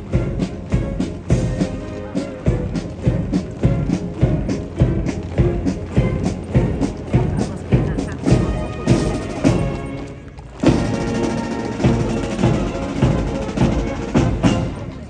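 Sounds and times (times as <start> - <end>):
military band playing march: 0.0 - 15.0
steady drum beat: 0.0 - 15.0.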